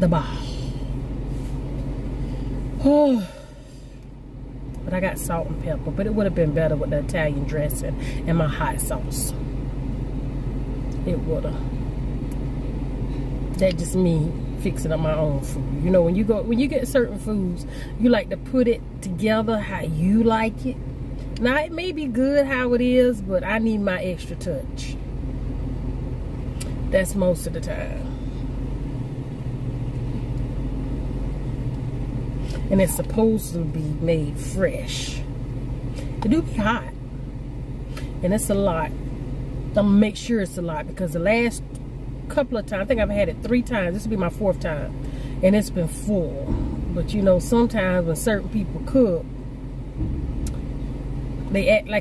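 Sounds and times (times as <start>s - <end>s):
low hum inside car cabin: 0.0s - 52.0s.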